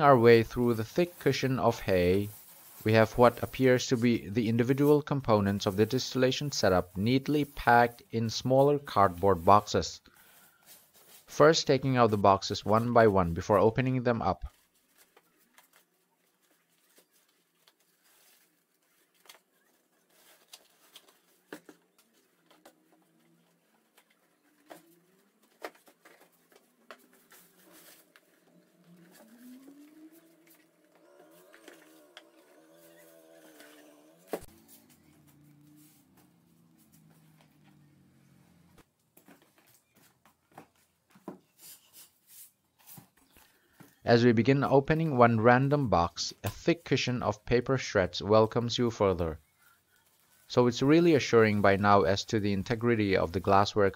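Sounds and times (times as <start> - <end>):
faint wavering pitched sound: 27.9 - 38.7.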